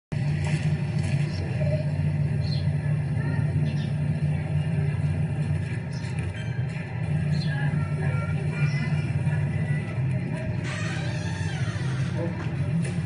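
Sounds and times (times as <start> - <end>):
steady low rumble: 0.1 - 13.0
faint voices: 0.7 - 13.0.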